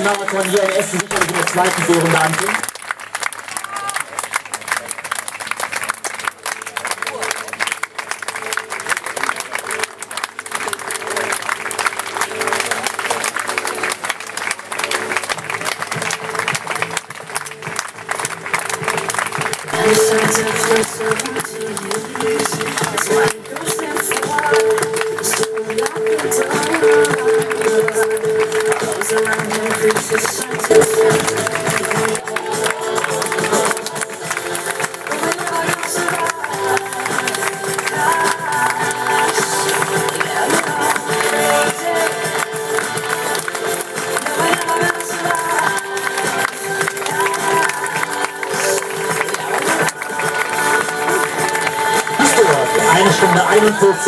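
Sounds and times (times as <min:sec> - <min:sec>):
background music: 0:00.0 - 0:54.0
spectators clapping: 0:00.0 - 0:54.0.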